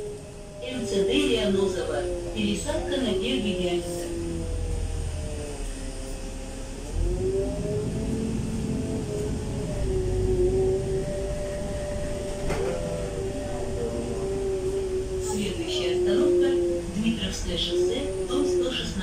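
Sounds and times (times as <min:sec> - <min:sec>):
bus engine rumble and whine: 0:00.0 - 0:19.0.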